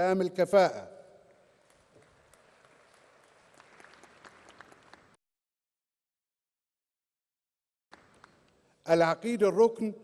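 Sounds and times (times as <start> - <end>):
faint audience applause: 1.4 - 5.2, 7.9 - 8.4.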